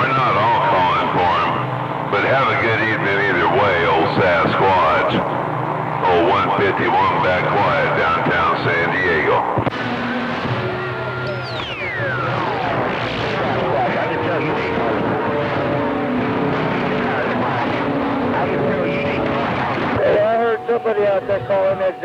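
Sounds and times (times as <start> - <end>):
faint radio voices: 0.0 - 22.0
radio static: 0.0 - 22.0
heterodyne whistles: 10.8 - 12.4.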